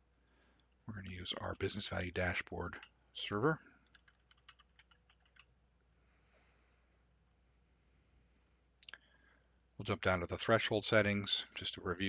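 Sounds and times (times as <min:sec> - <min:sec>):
keyboard typing: 0:03.8 - 0:05.5.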